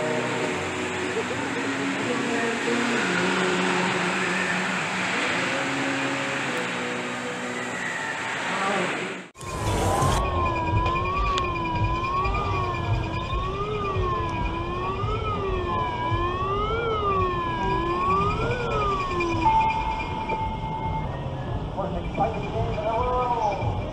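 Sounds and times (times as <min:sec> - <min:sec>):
siren-like wailing tone: 0:00.0 - 0:23.9.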